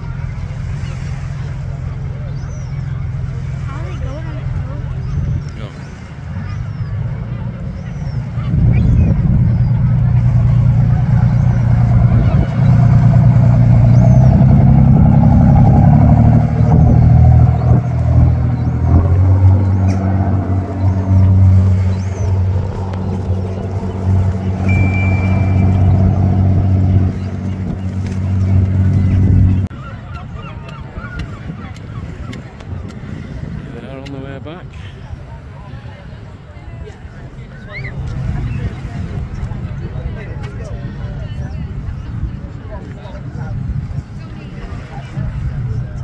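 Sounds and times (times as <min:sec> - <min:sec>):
speedboat engine running loud: 0:00.0 - 0:46.0.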